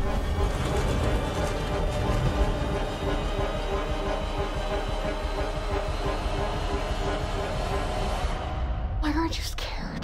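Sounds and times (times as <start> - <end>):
rhythmic mechanical rumble: 0.0 - 9.0.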